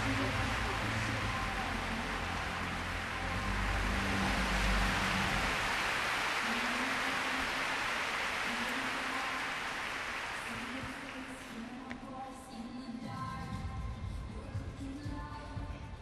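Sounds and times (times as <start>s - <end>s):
arena crowd applauding: 0.0s - 11.8s.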